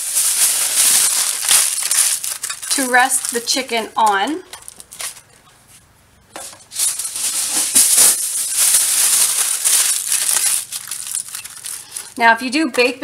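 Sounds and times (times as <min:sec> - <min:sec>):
aluminium foil crinkling: 0:00.0 - 0:05.5, 0:06.4 - 0:12.2.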